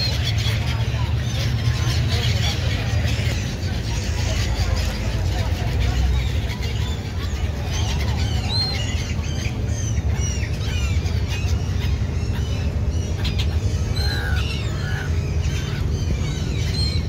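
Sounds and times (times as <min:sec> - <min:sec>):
gulls squawking: 0:00.0 - 0:17.0
steady low rumble: 0:00.0 - 0:17.0.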